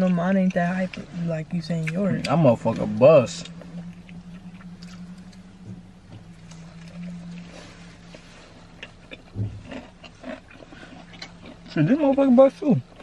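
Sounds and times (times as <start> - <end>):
steady low hum: 0.0 - 13.0
close-up chewing: 1.6 - 13.0
soft crunches and mouth clicks: 1.7 - 13.0.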